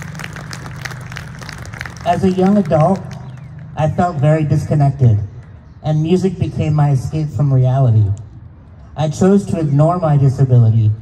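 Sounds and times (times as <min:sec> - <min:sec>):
people clapping: 0:00.0 - 0:03.6.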